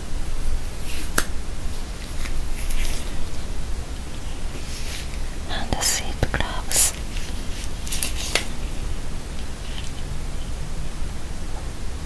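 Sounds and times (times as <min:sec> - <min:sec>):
latex gloves rubbing: 0:02.0 - 0:03.5, 0:04.1 - 0:10.0
woman whispering: 0:05.4 - 0:07.0.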